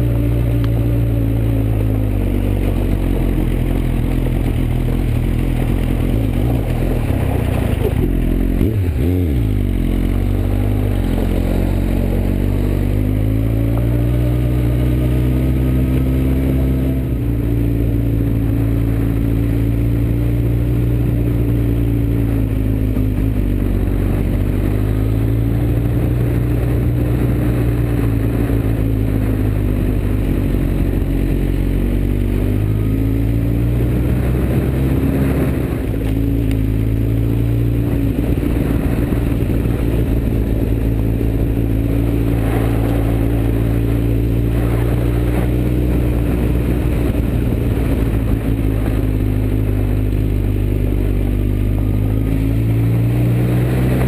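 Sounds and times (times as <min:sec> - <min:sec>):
motorcycle engine: 0:00.0 - 0:54.0.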